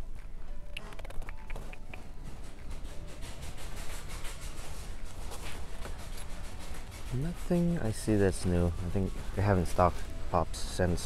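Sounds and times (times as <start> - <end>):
low rumble of store ambience: 0.0 - 11.0.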